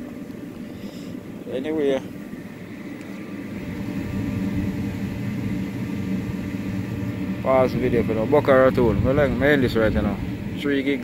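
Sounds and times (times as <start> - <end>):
electric blower fan humming: 0.0 - 11.0.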